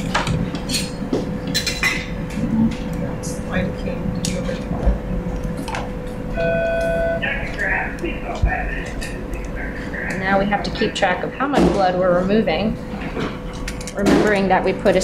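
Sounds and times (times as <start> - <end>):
short steady beep: 6.4 - 7.2
faint electronic tone: 6.4 - 7.4.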